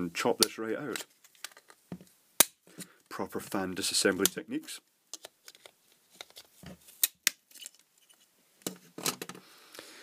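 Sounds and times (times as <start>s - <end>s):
plastic crunching and handling noise: 0.2s - 2.1s, 5.1s - 9.4s.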